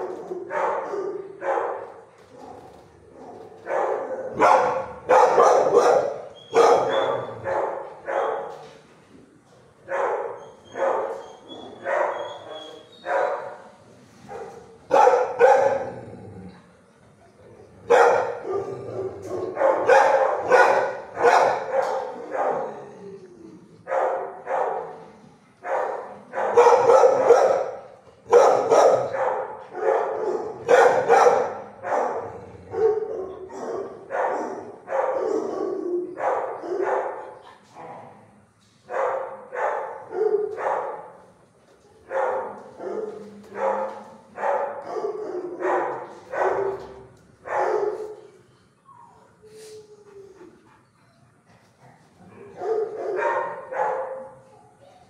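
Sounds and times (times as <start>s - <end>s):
dogs barking: 0.0s - 8.6s, 9.8s - 13.7s, 14.3s - 16.1s, 17.8s - 23.0s, 23.8s - 25.0s, 25.6s - 37.6s, 38.9s - 41.2s, 42.0s - 48.4s, 52.3s - 54.8s.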